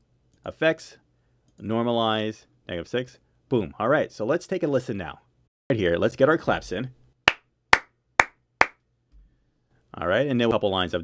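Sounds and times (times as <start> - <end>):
sharp hand claps: 7.3 - 8.8.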